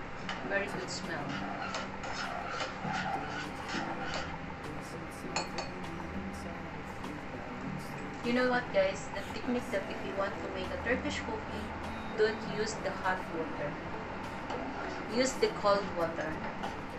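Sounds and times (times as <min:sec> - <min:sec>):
steady low hum: 0:00.0 - 0:16.9.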